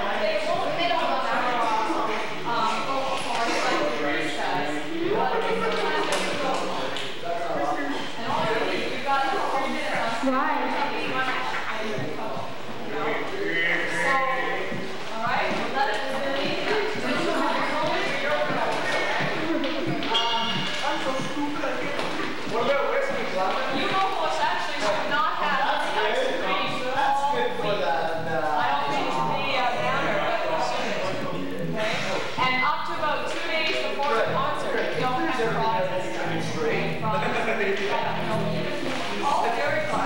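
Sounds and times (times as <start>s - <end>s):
indistinct talking: 0.0s - 40.0s.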